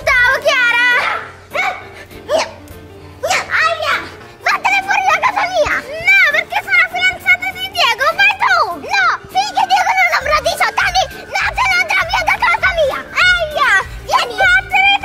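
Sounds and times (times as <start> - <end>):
girls shouting: 0.0 - 2.6, 3.2 - 15.0
background music: 0.0 - 15.0.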